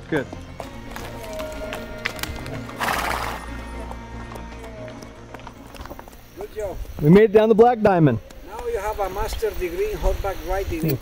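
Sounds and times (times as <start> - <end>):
background music: 0.0 - 10.0
hooves clicking on rocks: 0.0 - 11.0
horse snorting: 2.6 - 3.4.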